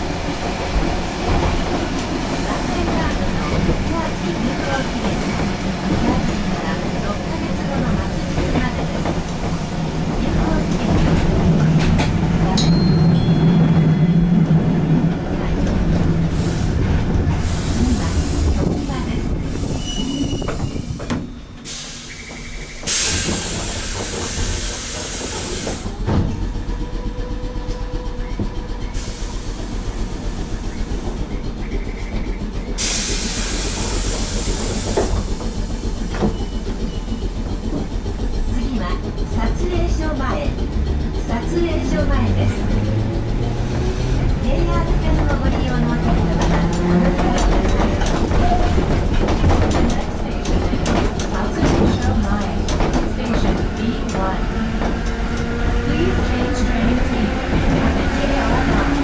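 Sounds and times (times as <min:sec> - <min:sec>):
tram wheels rumbling on rails: 0:00.0 - 0:59.0.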